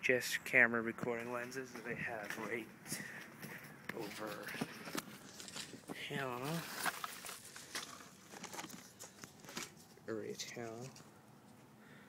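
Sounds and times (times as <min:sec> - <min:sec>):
phone handling clicks and rustling: 0:04.6 - 0:05.9, 0:06.7 - 0:09.8.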